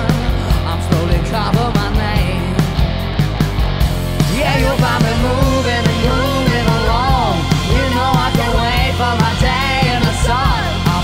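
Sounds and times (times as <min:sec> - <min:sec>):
drum kit beat: 0:00.0 - 0:11.0
electric bass: 0:00.0 - 0:11.0
keyboard: 0:00.0 - 0:11.0.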